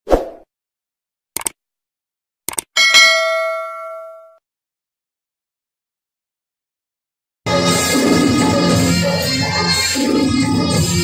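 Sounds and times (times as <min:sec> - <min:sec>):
sharp clicks: 0:01.4 - 0:01.6, 0:02.5 - 0:02.7
bell ding: 0:02.8 - 0:04.4.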